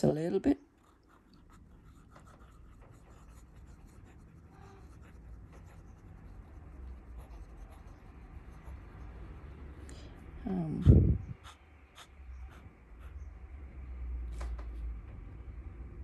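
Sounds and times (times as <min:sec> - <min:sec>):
fountain pen scratching on paper: 0:00.8 - 0:09.0.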